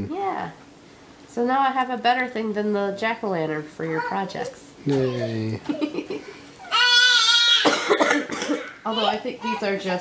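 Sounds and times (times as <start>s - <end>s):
person coughing: 7.6s - 8.8s.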